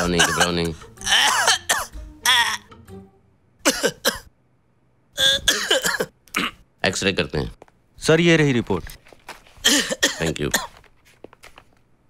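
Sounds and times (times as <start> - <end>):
man gagging and coughing: 0.0 - 2.6, 3.6 - 4.3, 5.2 - 6.6, 9.6 - 10.7.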